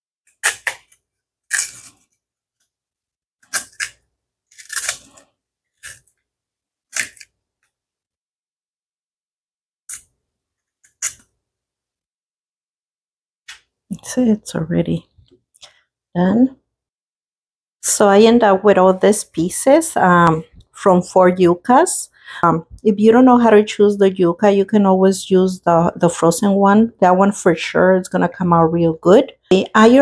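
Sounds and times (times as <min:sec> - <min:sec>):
knife cutting and peeling root skin: 0:00.2 - 0:02.7, 0:03.4 - 0:07.8, 0:09.9 - 0:11.4.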